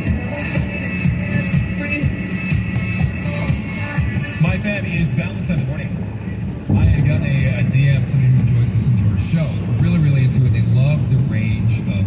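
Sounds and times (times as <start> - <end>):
low road noise: 0.0 - 12.0
voice from car audio: 4.3 - 12.0.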